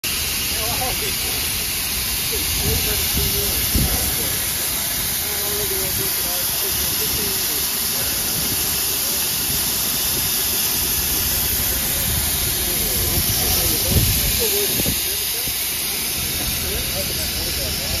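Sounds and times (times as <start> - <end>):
steam locomotive hissing steam: 0.0 - 18.0.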